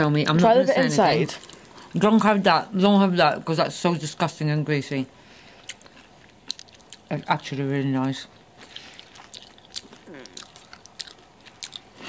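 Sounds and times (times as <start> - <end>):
person chewing: 1.3 - 2.0, 5.4 - 7.5, 8.4 - 12.0.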